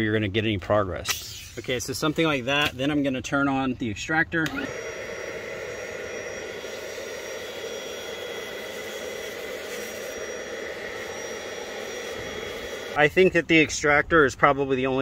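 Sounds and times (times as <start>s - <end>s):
carpet extractor motor whine: 4.4s - 13.0s
nozzle sucking water from carpet: 4.5s - 13.0s.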